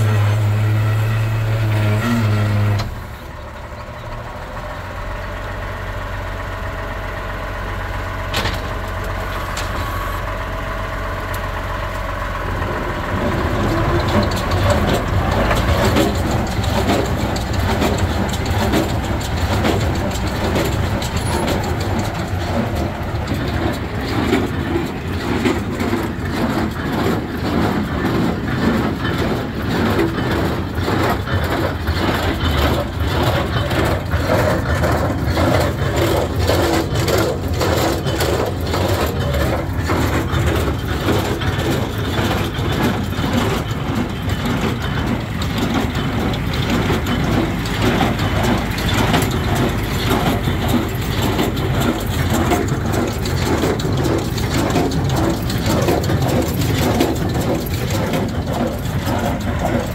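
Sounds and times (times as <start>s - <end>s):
baler mechanical clatter: 0.0s - 59.9s
tractor engine running: 0.0s - 59.9s.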